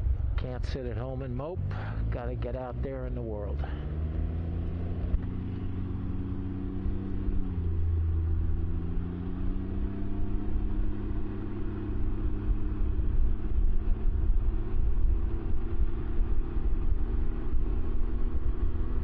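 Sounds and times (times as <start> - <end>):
steady low rumble: 0.0 - 19.0
three-wheeler engine accelerating: 1.3 - 19.0.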